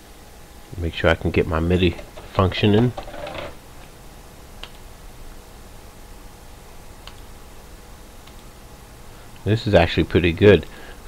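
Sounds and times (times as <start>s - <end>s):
faint steady hum: 0.0s - 11.0s
computer mouse clicks: 4.6s - 4.8s, 7.0s - 7.3s, 8.2s - 8.5s.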